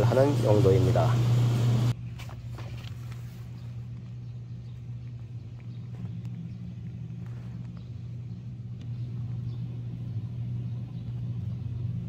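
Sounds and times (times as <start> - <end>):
machinery humming: 0.0 - 2.0.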